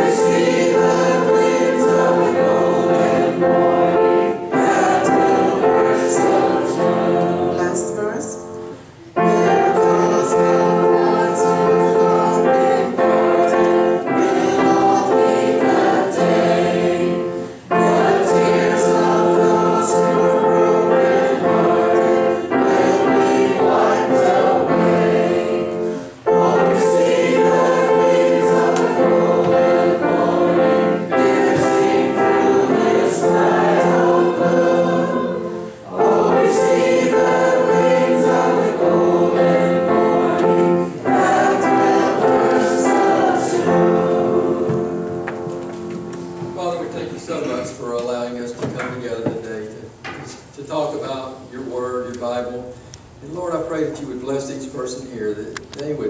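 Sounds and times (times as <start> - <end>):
piano accompaniment: 0.0 - 50.2
congregation singing a hymn: 0.0 - 50.4.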